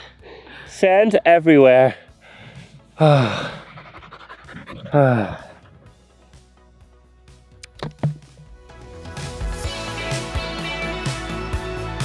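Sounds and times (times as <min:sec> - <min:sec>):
background music: 0:00.0 - 0:12.0
man sighing loudly: 0:03.0 - 0:03.7, 0:04.8 - 0:05.7.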